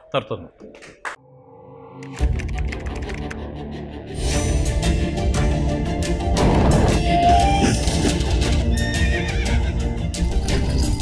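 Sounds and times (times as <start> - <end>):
dramatic soundtrack music: 0.9 - 11.0
horse whinnying: 8.7 - 9.8.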